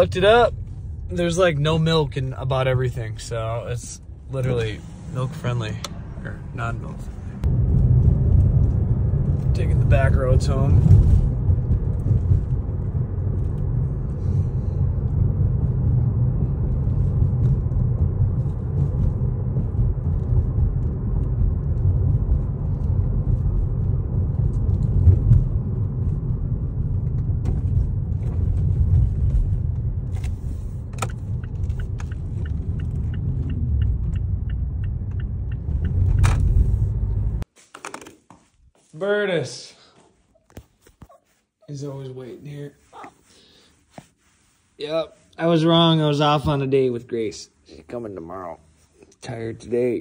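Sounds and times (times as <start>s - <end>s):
car road and engine noise: 0.0s - 37.5s
light regular ticking: 30.2s - 36.4s.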